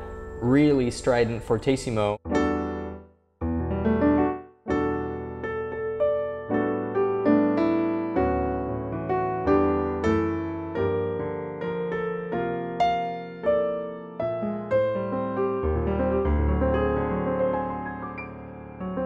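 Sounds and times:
piano chords ringing: 0.0s - 19.0s.

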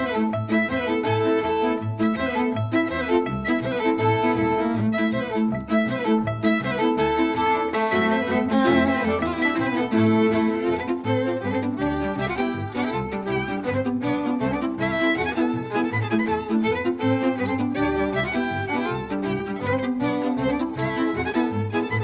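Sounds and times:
fiddles playing folk dance melody: 0.0s - 22.0s.

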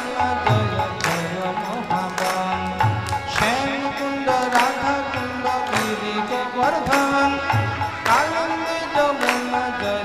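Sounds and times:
harmonium: 0.0s - 10.0s.

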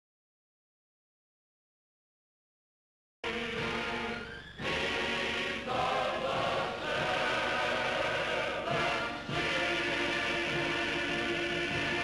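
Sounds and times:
choir singing held chords: 3.2s - 12.0s.

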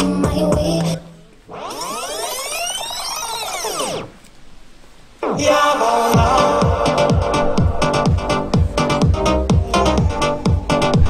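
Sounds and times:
dance music: 0.0s - 2.5s, 5.2s - 11.0s
synthesized pitch sweep: 0.0s - 4.2s, 5.2s - 11.0s.

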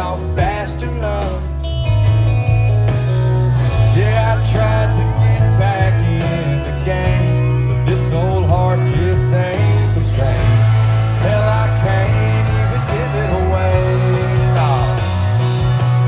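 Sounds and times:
person singing: 0.0s - 1.6s, 3.7s - 16.0s
heavy bass line: 0.0s - 16.0s
live country band playing: 0.0s - 16.0s.

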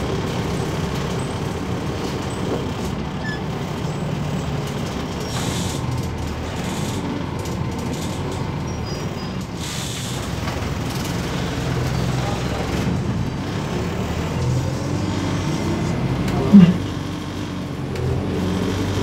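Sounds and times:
bus diesel engine droning: 0.0s - 19.0s
road noise: 0.0s - 19.0s.

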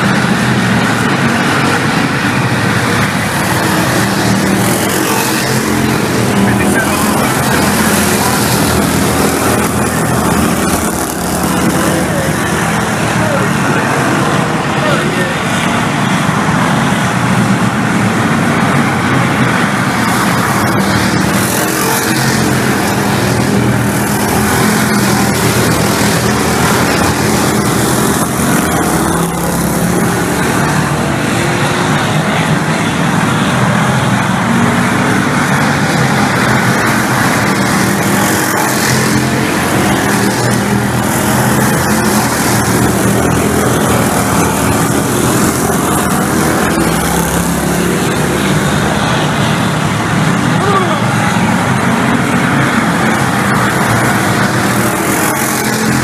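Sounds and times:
people's voices: 0.0s - 56.0s
race car engines droning: 0.0s - 56.0s.

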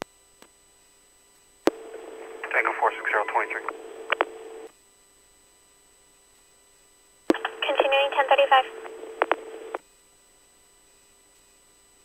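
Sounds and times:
steady hum: 0.1s - 12.0s
short radio clicks: 1.7s - 2.6s, 3.6s - 4.6s, 7.3s - 7.8s, 8.7s - 9.8s
radio channel hiss: 1.7s - 4.7s, 7.3s - 9.8s.

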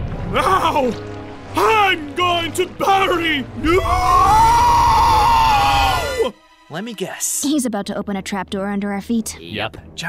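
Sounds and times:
man yelling: 1.6s - 6.3s.

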